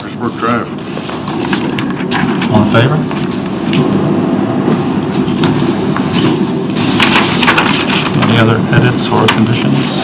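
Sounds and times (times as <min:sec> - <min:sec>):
low rumbling background hum: 0:00.0 - 0:10.0.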